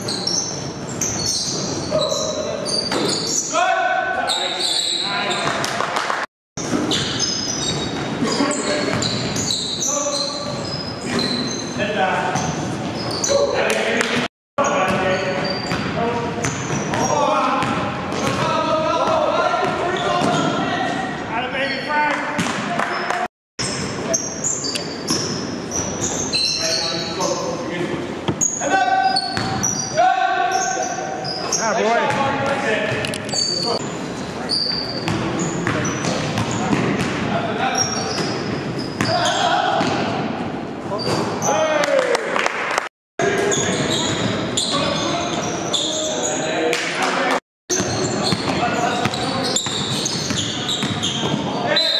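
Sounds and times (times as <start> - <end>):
sneakers squeaking: 0.0 - 5.8, 6.6 - 41.8, 43.2 - 46.6, 47.7 - 51.9
echoing indistinct voices: 7.6 - 42.4
basketball bouncing: 15.7 - 18.5, 22.4 - 22.7, 35.0 - 37.3, 47.7 - 51.5.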